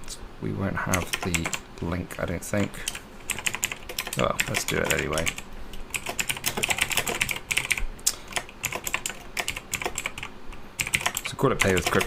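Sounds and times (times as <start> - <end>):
fast typing on keyboard: 0.9 - 1.6, 2.6 - 12.0.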